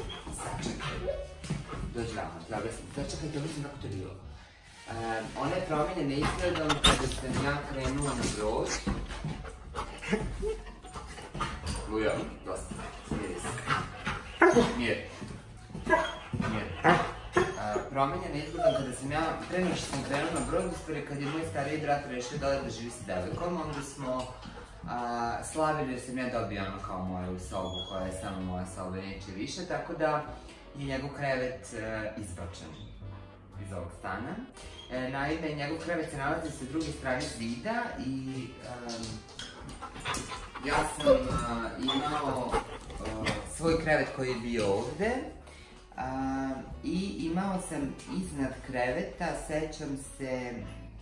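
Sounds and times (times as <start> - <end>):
dog panting: 0.0 - 3.5, 5.6 - 25.0, 38.9 - 45.8
dog whining and yipping: 15.8 - 19.1, 40.4 - 43.3.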